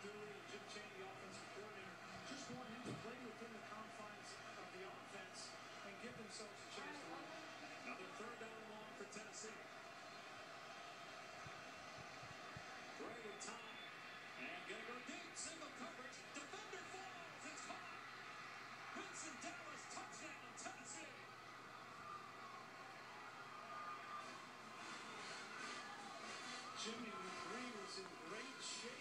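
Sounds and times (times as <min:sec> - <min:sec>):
commentator's voice on tv: 0:00.0 - 0:09.7, 0:12.9 - 0:18.1, 0:18.9 - 0:21.4, 0:26.6 - 0:29.0.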